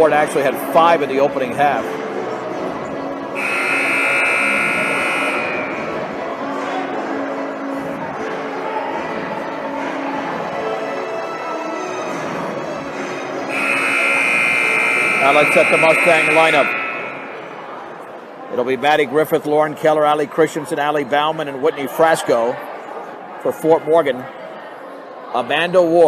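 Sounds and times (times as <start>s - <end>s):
crowd noise: 0.0s - 26.0s
scoreboard buzzer: 3.4s - 6.2s, 13.5s - 17.7s.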